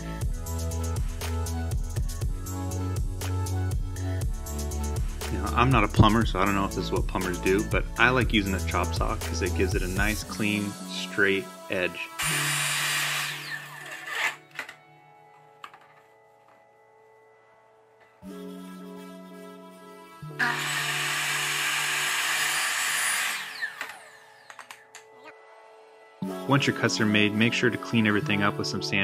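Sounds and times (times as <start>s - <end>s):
quiet background music: 0.0s - 29.0s
saw blade winding down: 12.2s - 14.7s, 20.4s - 24.8s
miter saw cutting plastic pipe: 12.2s - 14.8s, 20.3s - 25.0s.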